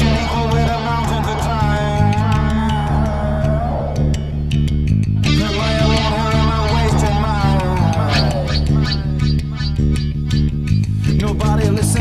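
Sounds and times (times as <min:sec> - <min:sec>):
rap-metal instrumental: 0:00.0 - 0:12.0.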